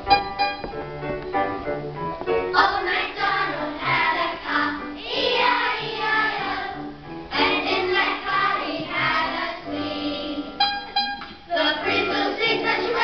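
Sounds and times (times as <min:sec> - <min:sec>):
piano accompaniment: 0:00.0 - 0:13.0
children singing: 0:02.5 - 0:10.6, 0:11.5 - 0:13.0.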